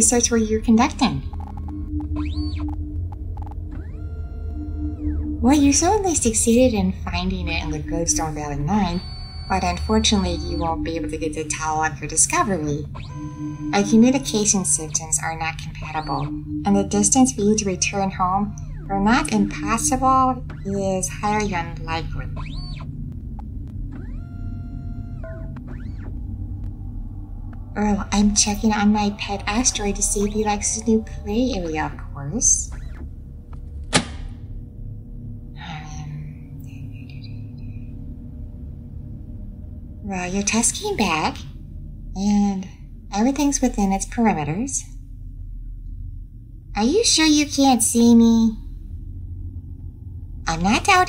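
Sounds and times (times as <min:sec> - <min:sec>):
pulsing tone: 0:00.0 - 0:44.6
low electronic hum: 0:00.0 - 0:51.0
computer bleeps: 0:00.1 - 0:23.0, 0:27.7 - 0:33.0, 0:35.6 - 0:38.0
rising and falling pitch sweeps: 0:00.7 - 0:33.6, 0:34.2 - 0:41.6.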